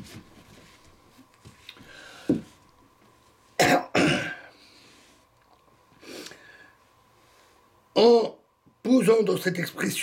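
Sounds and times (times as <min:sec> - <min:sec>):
man coughing: 0:03.6 - 0:04.5.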